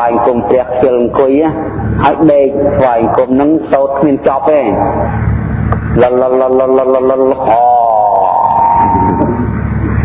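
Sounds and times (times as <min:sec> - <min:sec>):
man chanting: 0:00.0 - 0:05.2, 0:05.9 - 0:09.6
low steady hum: 0:00.0 - 0:10.0.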